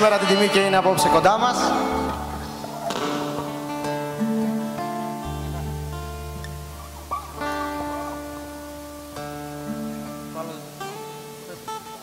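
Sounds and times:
held keyboard chords: 0:00.0 - 0:12.0
strummed acoustic guitars: 0:00.0 - 0:12.0.

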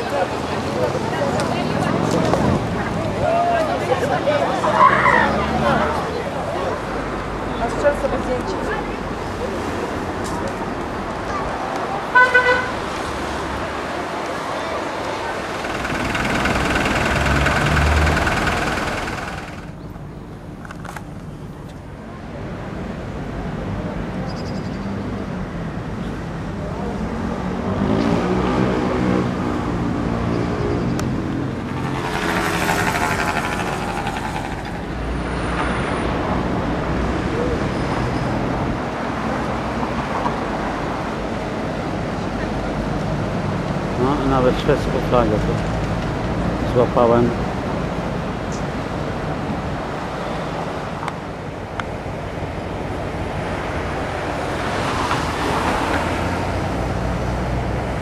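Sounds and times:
people talking: 0:00.0 - 0:10.6, 0:44.0 - 0:45.6
road traffic: 0:00.0 - 0:58.0
vehicle passing close by: 0:15.2 - 0:19.8, 0:27.3 - 0:37.5.

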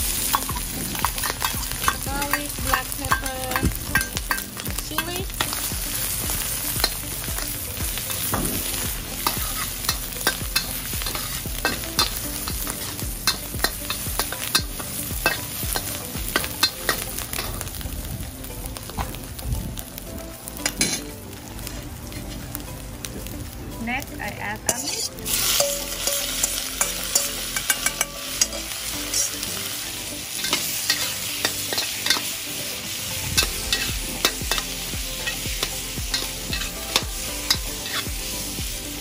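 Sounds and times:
metal spatula scraping a wok: 0:00.0 - 0:17.8, 0:24.7 - 0:29.7, 0:30.3 - 0:38.5
garlic sizzling in hot oil: 0:00.0 - 0:39.0.

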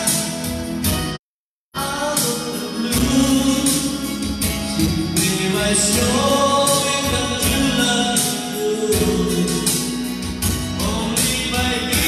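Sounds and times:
karaoke backing track: 0:00.0 - 0:12.0
man singing into a microphone: 0:01.7 - 0:12.0.

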